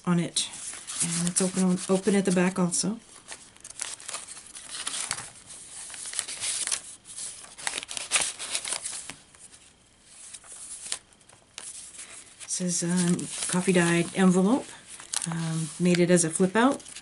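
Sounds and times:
paper rustling and crinkling: 0:00.6 - 0:17.0.

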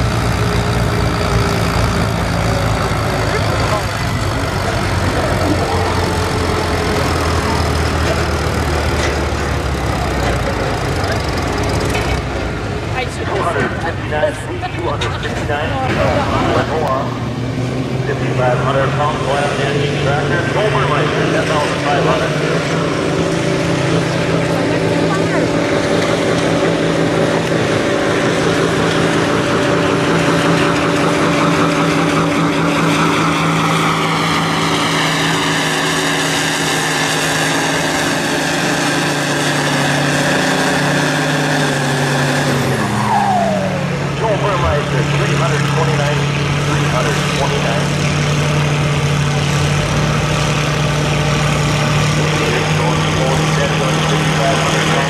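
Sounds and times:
tractor engine under load: 0:00.0 - 0:55.0.

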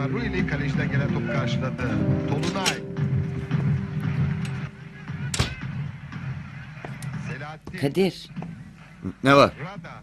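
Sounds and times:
steady held music tone: 0:00.0 - 0:07.1
door banging shut: 0:05.3 - 0:05.8.

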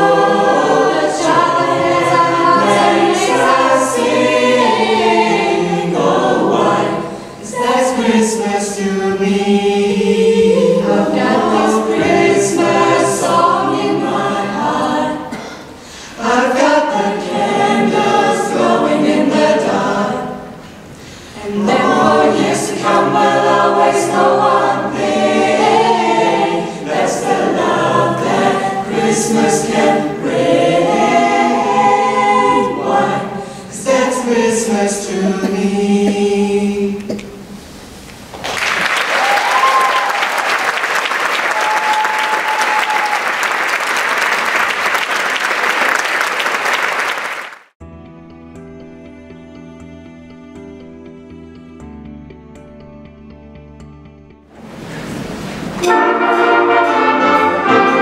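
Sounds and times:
a cappella ensemble singing: 0:00.0 - 0:38.0, 0:54.6 - 0:58.0.

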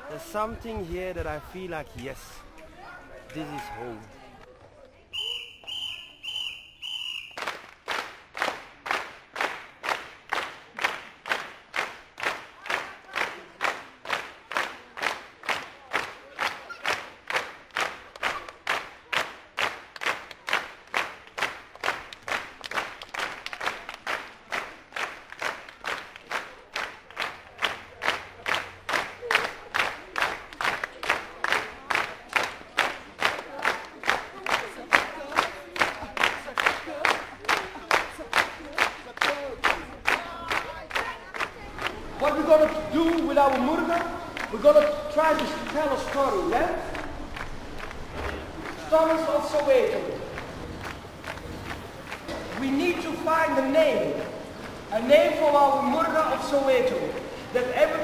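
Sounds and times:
crowd voices: 0:00.0 - 0:07.3, 0:26.1 - 0:53.3
whistle blasts: 0:05.1 - 0:07.5
group clapping a steady beat: 0:05.6 - 0:58.0.

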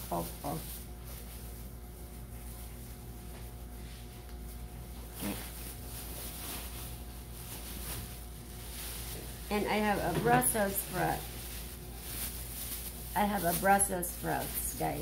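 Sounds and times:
plastic bag rustling: 0:00.0 - 0:15.0
steady low hum: 0:00.0 - 0:15.0.

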